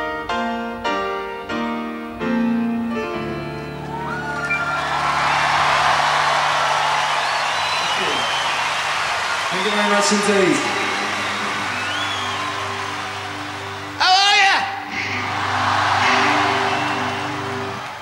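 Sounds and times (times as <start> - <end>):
grand piano chords: 0.0 - 7.2
crowd cheering and applauding: 3.8 - 18.0
crowd whistles: 3.9 - 14.0, 14.9 - 18.0.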